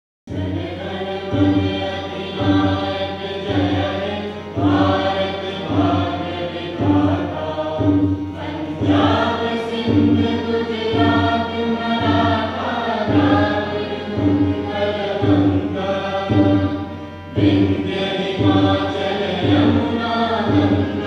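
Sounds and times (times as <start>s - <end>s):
choir singing solemn song: 0.3s - 21.0s.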